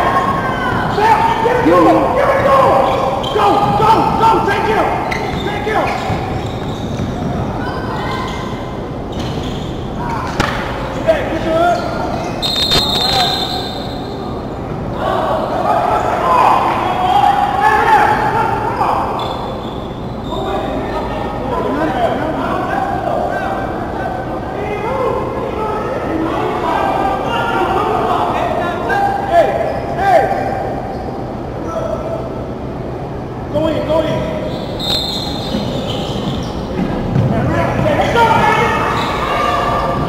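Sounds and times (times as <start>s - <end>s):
hubbub of voices: 0.0s - 40.0s
basketball bouncing on court: 35.4s - 38.0s.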